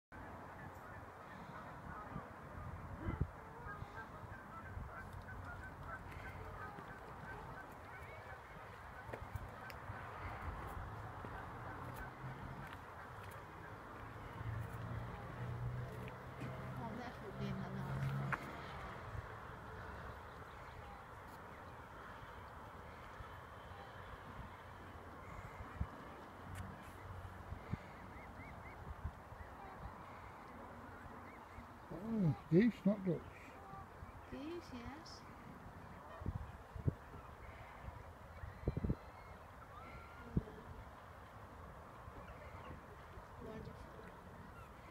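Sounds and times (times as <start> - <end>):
geese calling: 0.6 - 40.8
goose honking: 3.0 - 14.4
goslings peeping: 3.0 - 14.8, 24.4 - 35.0.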